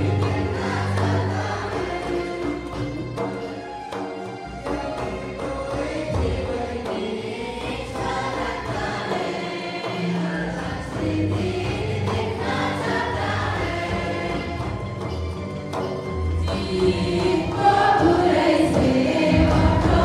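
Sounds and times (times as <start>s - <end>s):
women singing a hymn together: 5.6s - 14.6s, 16.4s - 20.0s.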